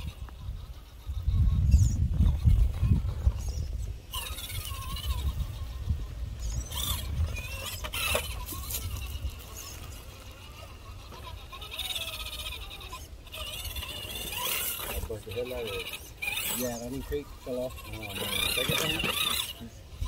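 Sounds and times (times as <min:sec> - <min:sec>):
toy car electric motor whining: 0:00.0 - 0:20.0.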